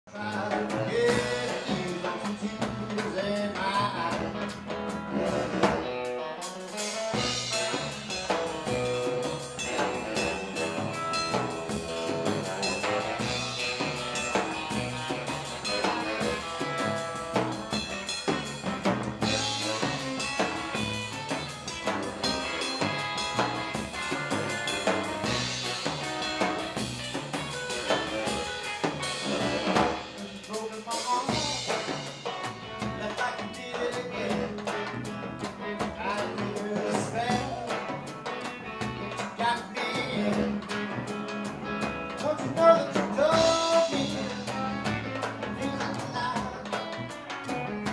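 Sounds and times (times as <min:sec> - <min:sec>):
upright double bass: 0:00.1 - 0:05.9, 0:07.1 - 0:30.6, 0:31.2 - 0:47.9
drum kit steady beat: 0:00.1 - 0:47.9
electric guitar: 0:00.1 - 0:47.9
saxophone lead: 0:03.6 - 0:38.9, 0:39.8 - 0:47.9.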